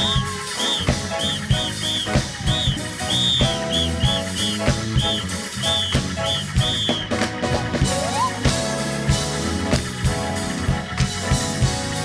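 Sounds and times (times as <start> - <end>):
high whistle-like tone: 0.0 - 7.2
gospel band music: 0.0 - 12.0
steady drum beat: 0.0 - 12.0.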